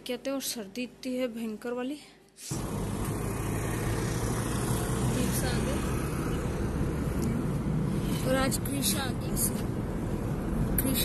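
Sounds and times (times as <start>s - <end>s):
car engine and road noise: 2.5s - 11.0s.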